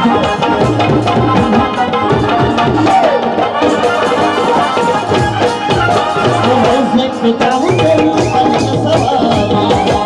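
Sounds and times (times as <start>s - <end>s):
harmonium melody: 0.0s - 10.0s.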